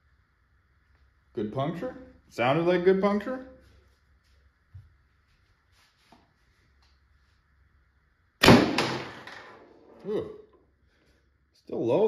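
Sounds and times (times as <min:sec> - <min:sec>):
pistol shot: 0:08.4 - 0:09.3.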